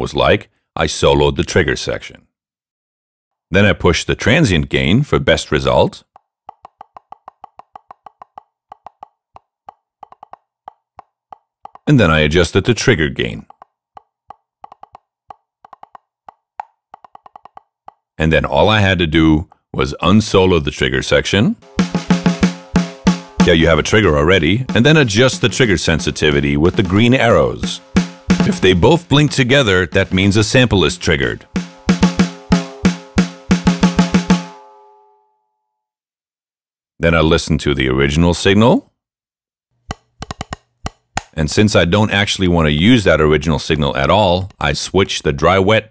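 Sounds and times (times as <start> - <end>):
drum practice pad taps: 6.2 - 11.9, 13.4 - 18.1, 21.6 - 34.8, 39.9 - 41.3.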